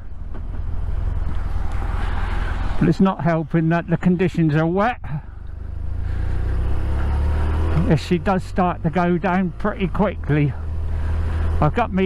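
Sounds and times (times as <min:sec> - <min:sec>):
motorcycle engine pulling away: 0:05.8 - 0:09.0.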